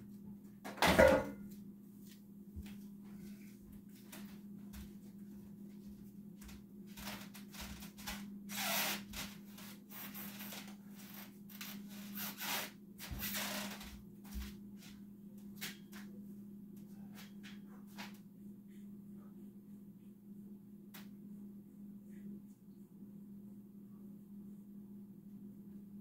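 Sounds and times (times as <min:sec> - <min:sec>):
steady low hum: 0:00.0 - 0:26.0
soft footfalls: 0:02.0 - 0:07.9.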